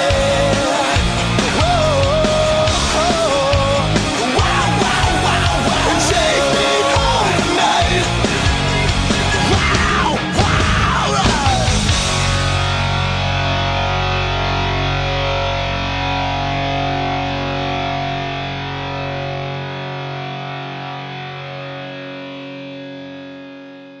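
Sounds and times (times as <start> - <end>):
bass guitar: 0.0 - 24.0
distorted electric guitar chord: 0.0 - 24.0.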